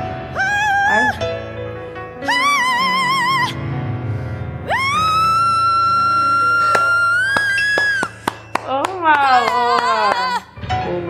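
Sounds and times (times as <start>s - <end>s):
piano accompaniment: 0.0s - 11.0s
woman singing: 2.2s - 3.6s
sharp claps: 6.6s - 10.4s.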